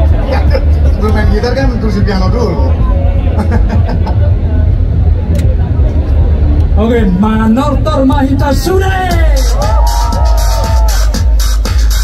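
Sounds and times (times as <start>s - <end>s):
crowd chatter: 0.0s - 12.0s
low rumble from sound system: 0.0s - 12.0s
man's voice over loudspeaker: 0.9s - 2.9s, 6.7s - 9.6s.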